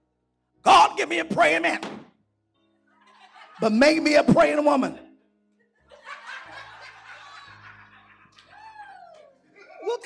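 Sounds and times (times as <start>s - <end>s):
congregation laughing: 2.9s - 4.6s, 5.7s - 9.0s.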